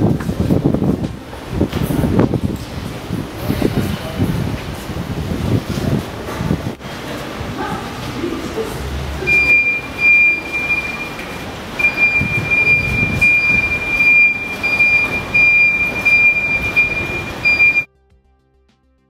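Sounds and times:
high-pitched electronic alarm: 9.3s - 17.9s.

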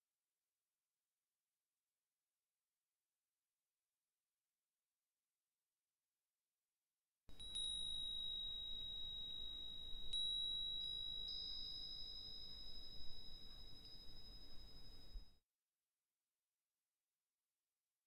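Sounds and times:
small chime bells ringing: 7.3s - 15.4s.

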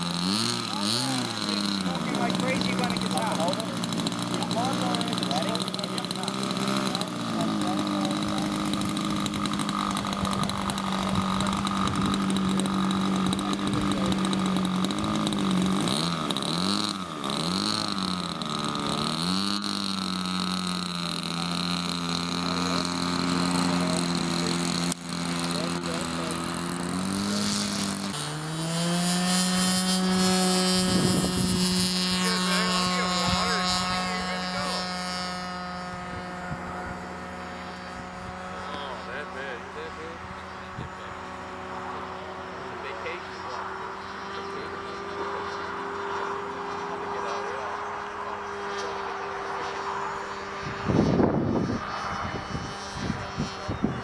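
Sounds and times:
model airplane engine and propeller: 0.0s - 54.0s.

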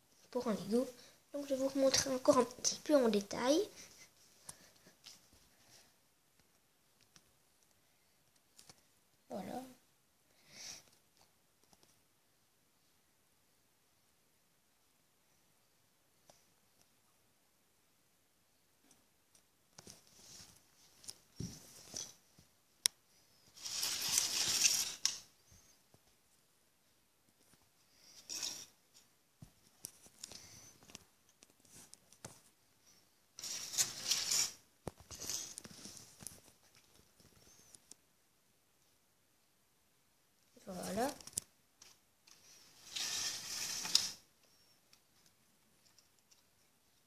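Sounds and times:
rustling and scraping: 19.8s - 22.5s, 23.3s - 26.2s, 27.3s - 37.9s, 41.1s - 46.5s
plastic parts rattling and scraping: 23.5s - 25.3s, 28.2s - 28.8s, 33.4s - 37.4s, 41.2s - 44.2s
small plastic clicks: 41.2s - 44.1s.

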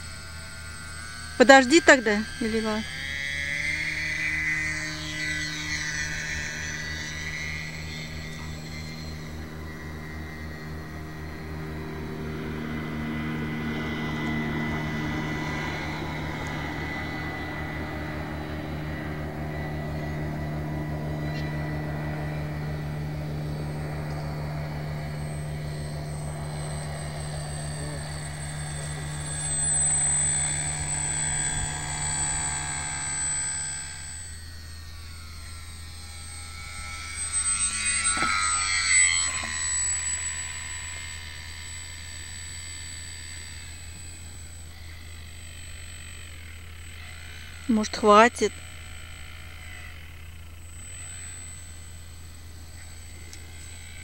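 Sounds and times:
model plane motor droning: 0.0s - 54.0s
motor whine rising in pitch: 0.0s - 54.0s.

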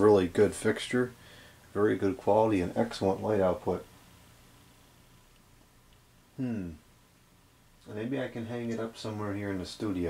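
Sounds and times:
fluorescent light ballast hum: 0.0s - 10.0s.

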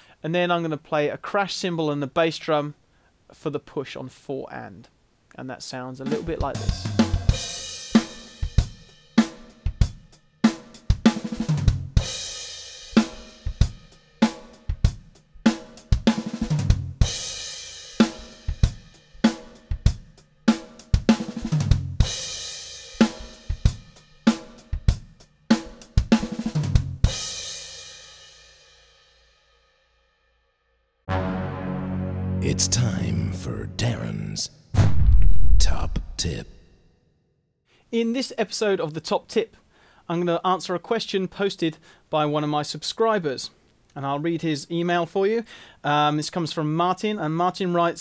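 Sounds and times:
drum kit playing a groove: 6.0s - 28.0s, 32.2s - 34.4s.

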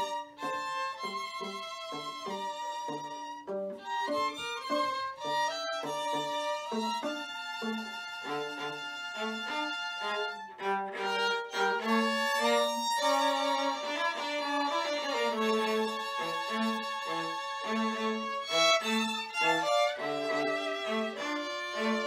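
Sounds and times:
violins playing chamber music: 0.0s - 22.0s.

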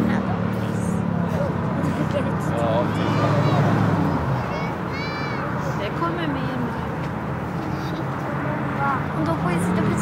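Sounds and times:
highway traffic noise: 0.0s - 10.0s.

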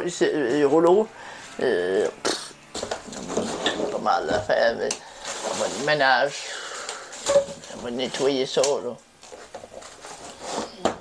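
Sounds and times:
plastic bottles and tools handled: 2.7s - 11.0s.

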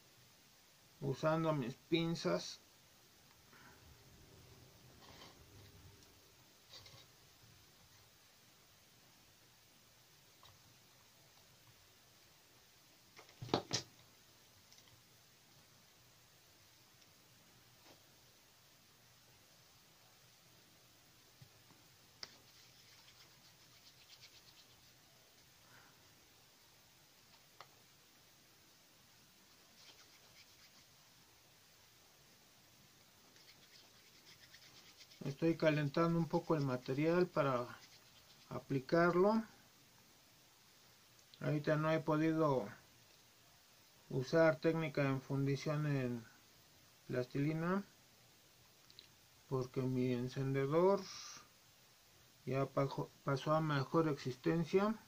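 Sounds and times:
scratchy rustle of clay handling: 4.9s - 6.0s, 22.2s - 25.1s, 29.5s - 31.0s, 33.3s - 39.0s
palms rubbing plasticine: 22.2s - 25.1s, 29.5s - 31.0s, 33.3s - 38.8s.

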